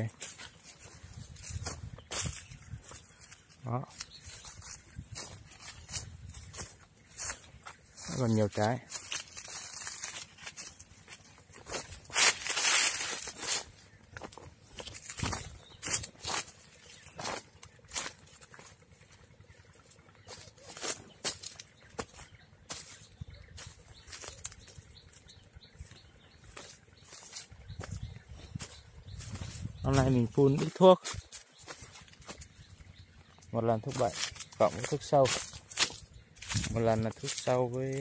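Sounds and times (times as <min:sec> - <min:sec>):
branches rustling: 0:00.0 - 0:38.0
footsteps crunching dry leaves: 0:00.0 - 0:38.0.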